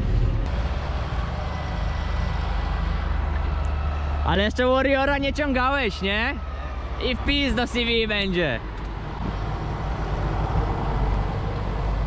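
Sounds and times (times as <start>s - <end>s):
tractor engine rumbling: 0.0s - 12.0s.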